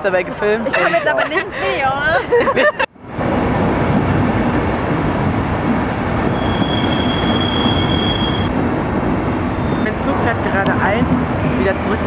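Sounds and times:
high-pitched wheel squeals: 2.9s - 8.5s, 9.2s - 10.8s
train wheels rumbling and rattling: 3.0s - 12.0s.

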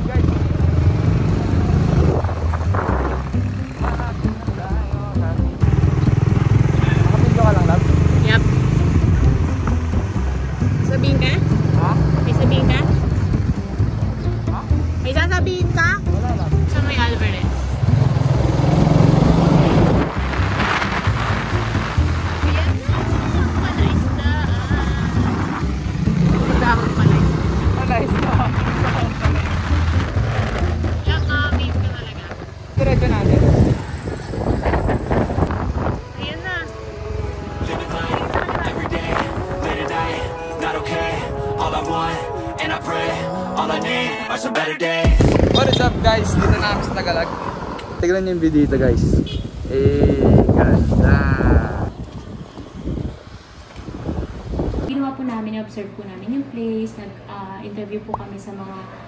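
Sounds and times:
motorcycle engine rumbling: 0.0s - 43.4s, 45.0s - 55.6s
wind and road noise: 0.0s - 59.0s
person's voice: 37.6s - 45.0s.

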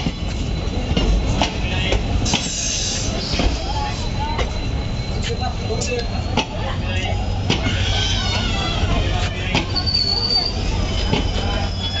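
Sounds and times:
train coaches rumbling: 0.0s - 12.0s
high-pitched wheel squeal: 2.2s - 12.0s.

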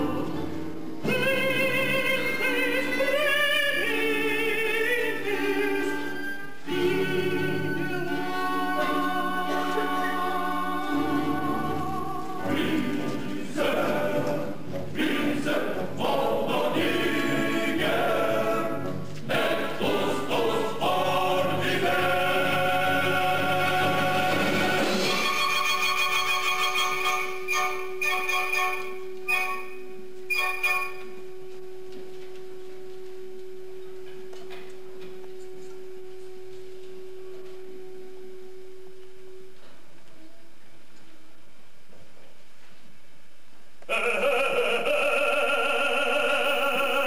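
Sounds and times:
choir singing: 0.0s - 29.7s, 43.9s - 47.0s
background hiss: 0.0s - 47.0s
held pure tone: 19.4s - 41.9s.

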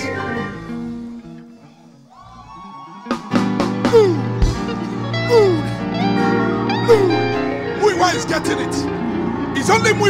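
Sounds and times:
soft band music: 0.0s - 2.0s, 3.1s - 10.0s.

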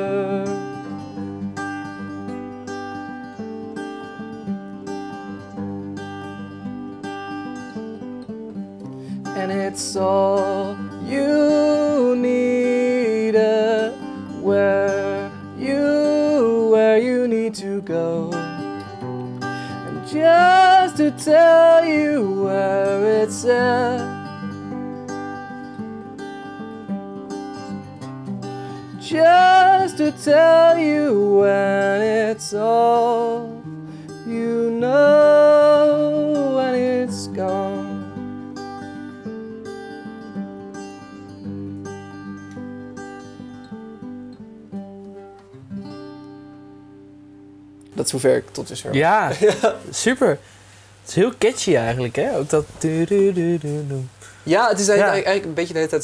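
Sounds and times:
man singing: 0.0s - 0.8s, 9.2s - 18.8s, 19.7s - 24.3s, 28.9s - 38.2s, 51.6s - 55.6s
acoustic guitar playing: 0.0s - 56.0s.

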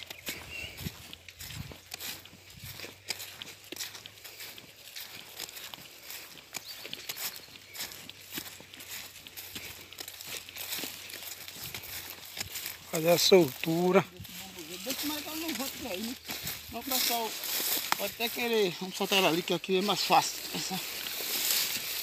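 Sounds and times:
footsteps through grass: 0.0s - 22.0s
stalks snapping underfoot: 1.0s - 4.0s, 5.4s - 12.9s, 16.3s - 18.4s.

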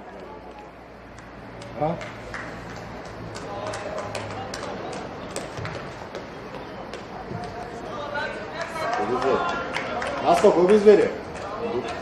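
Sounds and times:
players shouting: 6.2s - 12.0s.

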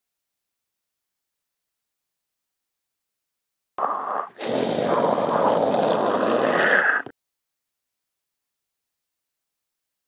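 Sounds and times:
breathy rushing mouth noise: 3.8s - 7.1s.

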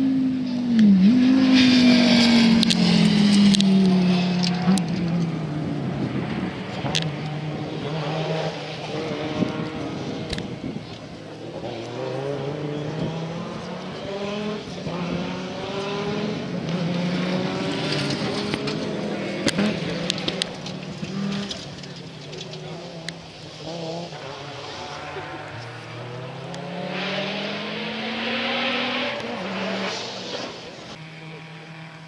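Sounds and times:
rally car engine revving: 0.0s - 32.0s.

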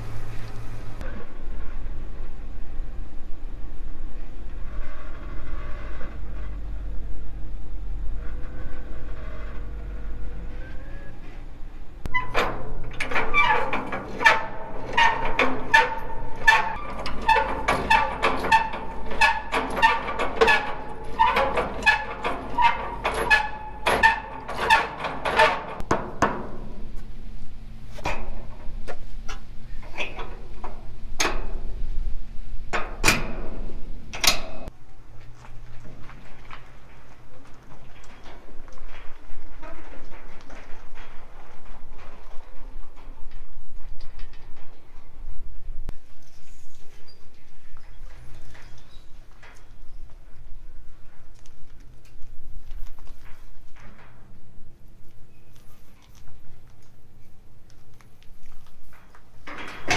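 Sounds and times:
faint squeaks: 4.1s - 25.8s, 43.9s - 51.8s, 52.8s - 57.6s
metal trailer hitch clanking: 12.0s - 27.0s, 27.9s - 31.8s, 32.7s - 34.7s, 59.4s - 59.9s.

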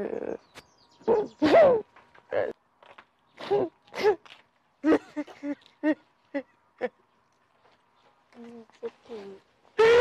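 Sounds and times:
woman crying and wailing: 0.0s - 0.4s.

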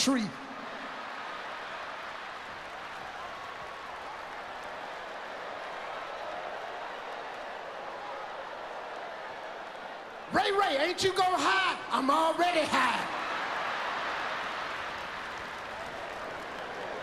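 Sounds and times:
audience applauding: 0.1s - 10.6s, 12.6s - 17.0s.

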